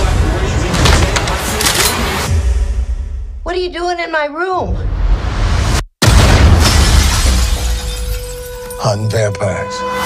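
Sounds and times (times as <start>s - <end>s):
glass shattering: 6.6s - 9.0s.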